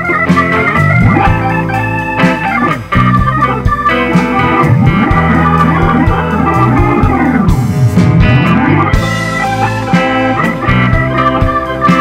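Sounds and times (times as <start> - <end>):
drums: 0.0 - 12.0
electric bass: 0.0 - 12.0
organ solo line: 0.0 - 12.0.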